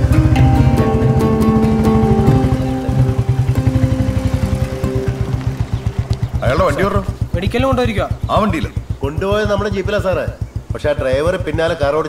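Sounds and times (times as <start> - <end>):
background music: 0.0 - 9.7
motorcycle engine idling: 0.0 - 12.0.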